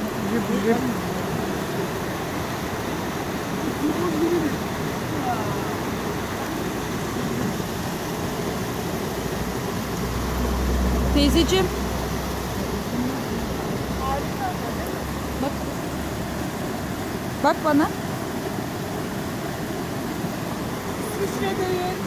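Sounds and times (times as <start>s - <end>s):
stream rushing over rocks: 0.0s - 22.0s
faint voices: 3.5s - 7.6s.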